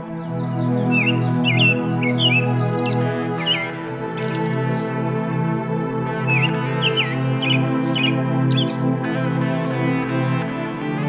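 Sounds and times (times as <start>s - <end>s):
calm instrumental music: 0.0s - 11.0s.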